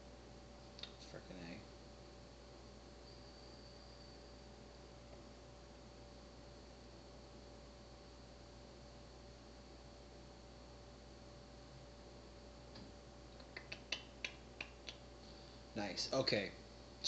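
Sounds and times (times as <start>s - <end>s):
faint hiss and hum: 0.0s - 17.0s.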